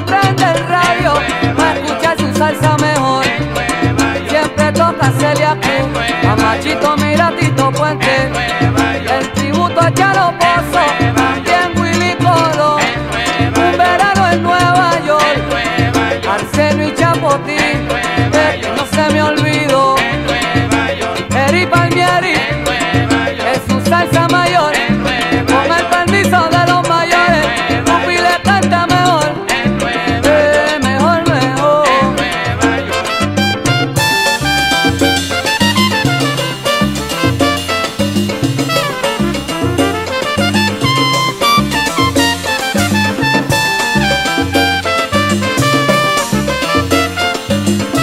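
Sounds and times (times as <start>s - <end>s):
salsa band playing: 0.0s - 48.0s.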